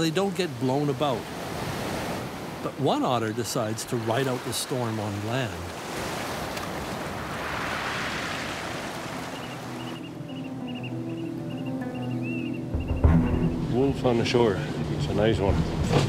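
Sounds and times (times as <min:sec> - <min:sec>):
surf washing over rocky shore: 0:00.0 - 0:10.0
soft background music: 0:09.0 - 0:16.0.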